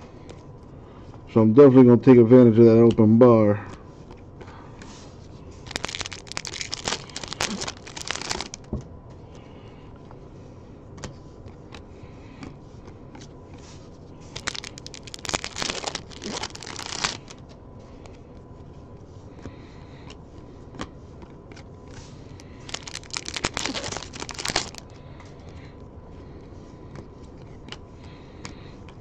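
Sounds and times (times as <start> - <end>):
trading cards rustling and clicking: 5.6 - 8.7, 14.2 - 17.5, 21.5 - 25.0.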